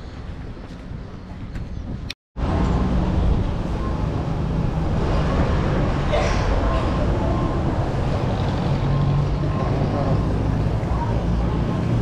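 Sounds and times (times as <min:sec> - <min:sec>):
street traffic rumble: 0:00.0 - 0:12.0
faint voices: 0:05.2 - 0:12.0.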